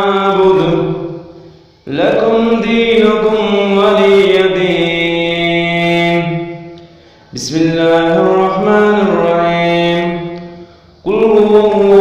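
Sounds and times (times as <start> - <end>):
melodic religious recitation: 0.0 - 12.0.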